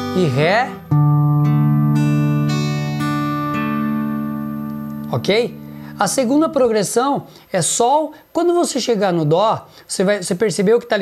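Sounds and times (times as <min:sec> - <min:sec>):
acoustic guitar arpeggio: 0:00.0 - 0:07.4.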